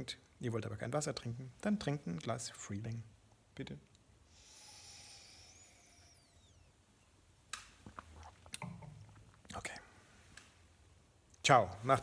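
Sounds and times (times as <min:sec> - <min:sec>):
sipping from a glass: 0:07.7 - 0:10.1.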